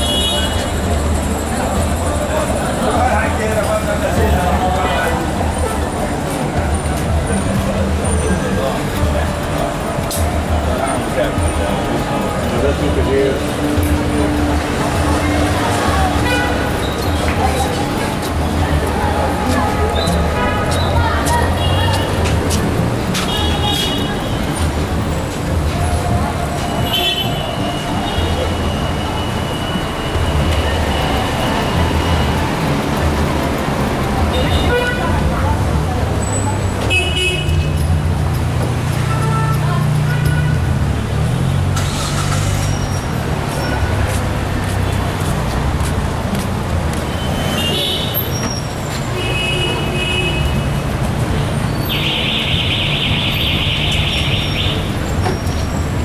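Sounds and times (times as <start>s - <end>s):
traffic rumble: 0.0s - 56.0s
voices of passersby: 0.0s - 56.0s.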